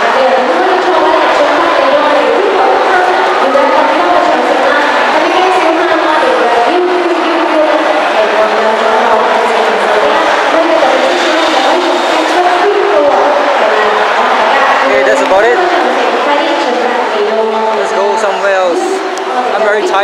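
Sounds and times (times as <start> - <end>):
babble of many voices: 0.0 - 20.0.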